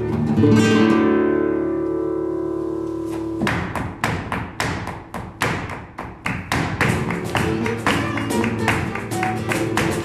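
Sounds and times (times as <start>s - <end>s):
dancer's shoes stamping on stage: 3.2s - 10.0s.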